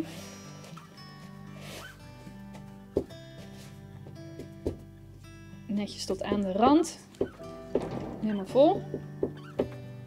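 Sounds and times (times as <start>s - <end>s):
soft background music: 0.0s - 10.0s
knock: 7.2s - 8.2s, 8.8s - 9.8s.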